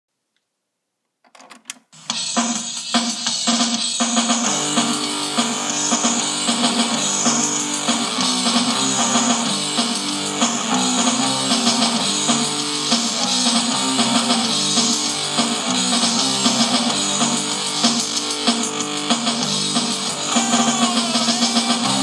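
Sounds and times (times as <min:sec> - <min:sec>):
rock music with guitar and drums: 0:02.0 - 0:22.0.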